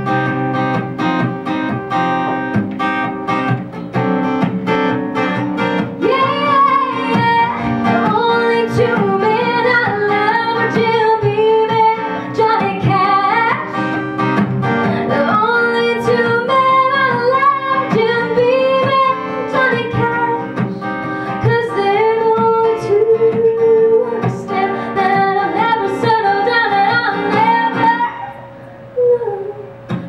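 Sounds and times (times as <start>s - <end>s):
acoustic guitar strummed: 0.0s - 30.0s
woman singing: 5.9s - 14.1s, 14.8s - 28.4s, 29.0s - 29.8s.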